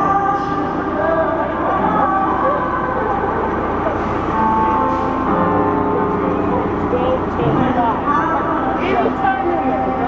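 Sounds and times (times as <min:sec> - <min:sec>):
crowd noise: 0:00.0 - 0:10.0
live concert music over loudspeakers: 0:00.0 - 0:10.0
sliding vocals: 0:06.9 - 0:10.0.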